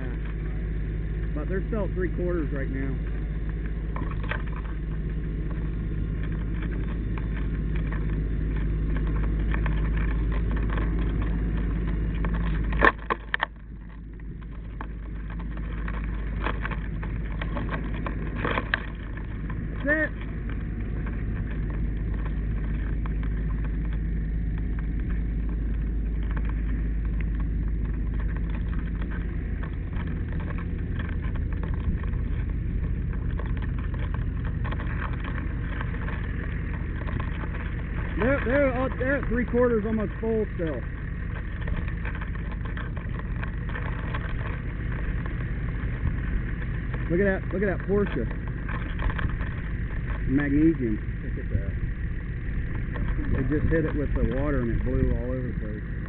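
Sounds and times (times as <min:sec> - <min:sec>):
fire truck engine running: 0:00.0 - 0:56.0.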